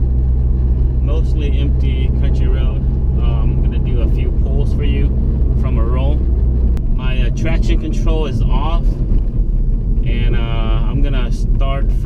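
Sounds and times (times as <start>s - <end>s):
car engine drone in cabin: 0.0s - 12.0s
road and wind noise: 0.0s - 12.0s.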